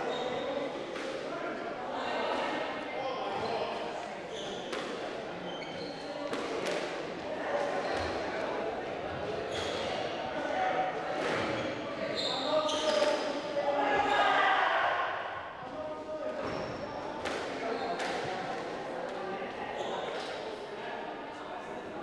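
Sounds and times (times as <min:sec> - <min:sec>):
voices echoing in a hall: 0:00.0 - 0:22.0.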